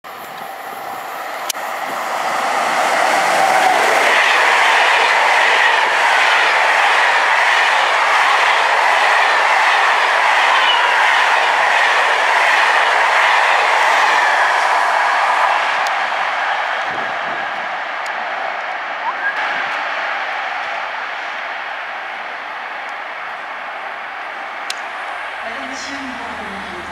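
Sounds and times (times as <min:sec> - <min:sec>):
train passing: 0:00.0 - 0:26.9.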